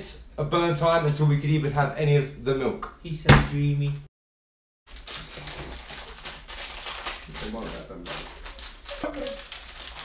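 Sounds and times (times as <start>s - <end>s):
rustling and handling noises: 4.9s - 10.0s
voices murmuring: 8.9s - 9.4s.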